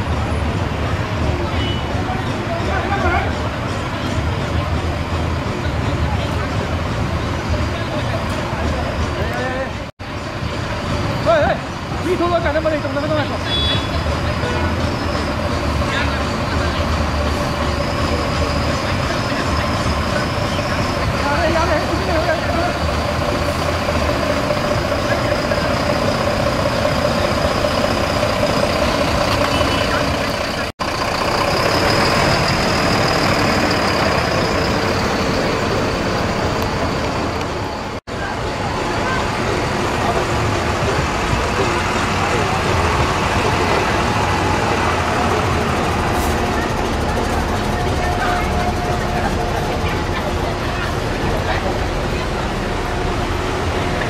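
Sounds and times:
people's voices: 0.0s - 9.9s, 10.7s - 54.0s
bus engines idling with whine: 0.0s - 54.0s.

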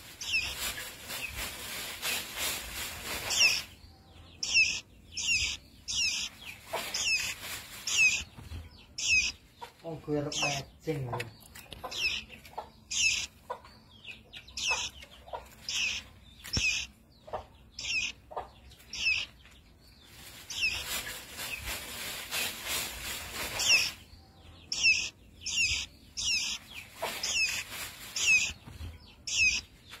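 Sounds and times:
baby songbird chirping: 0.0s - 30.0s.

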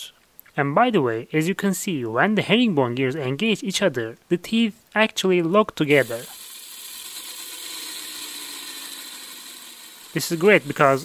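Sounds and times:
gears whirring: 5.9s - 11.0s.

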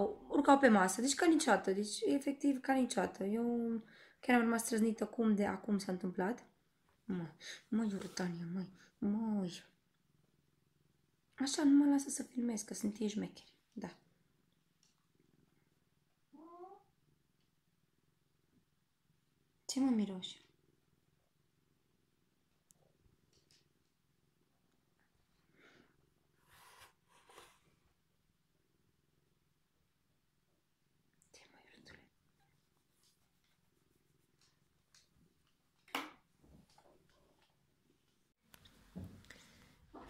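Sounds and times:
cat meow: 16.4s - 16.9s
soft breathy sound: 38.6s - 40.0s.

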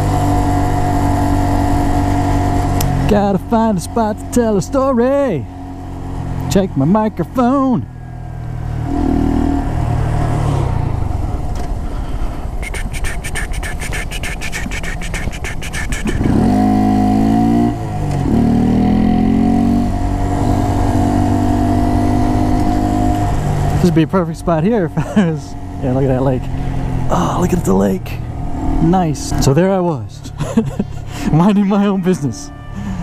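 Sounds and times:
motorcycle engine accelerating: 0.0s - 12.7s, 15.4s - 33.0s.

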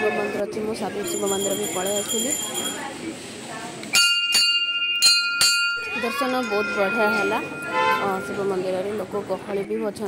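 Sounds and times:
temple bell ringing: 0.0s - 2.9s, 4.0s - 9.1s.

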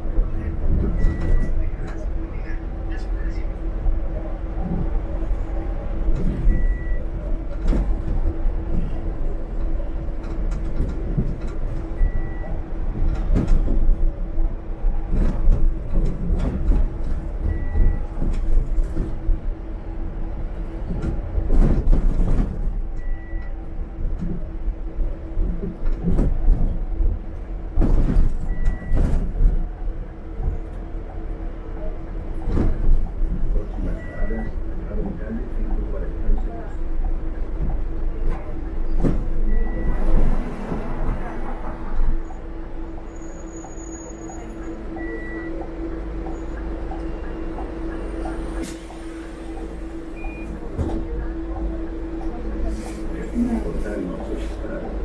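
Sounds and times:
bus body rattles and knocks: 0.0s - 55.0s
bus engine and road rumble: 0.0s - 55.0s.

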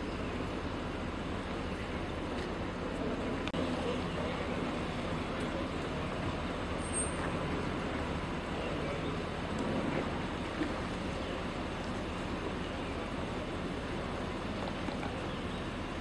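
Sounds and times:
street traffic rumble: 0.0s - 16.0s.

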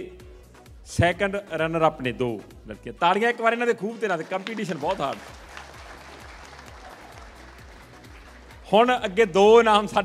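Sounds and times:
soft background music: 0.0s - 10.0s
audience applauding: 3.2s - 8.8s.

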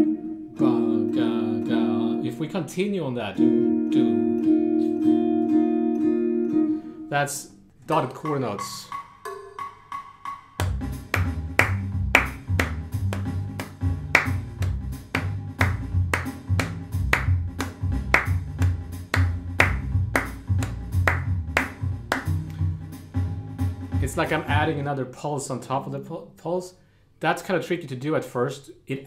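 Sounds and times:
hand claps: 10.6s - 22.6s
bass line and drums: 10.6s - 24.9s.

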